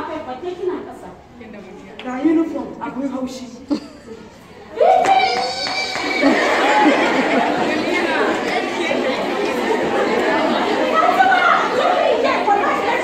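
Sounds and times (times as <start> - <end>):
babble of girls talking: 3.7 - 13.0.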